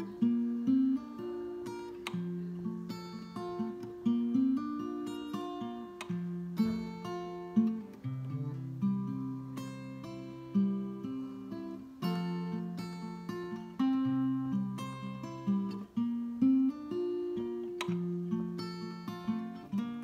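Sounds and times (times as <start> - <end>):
acoustic guitar picking chords: 0.0 - 20.0.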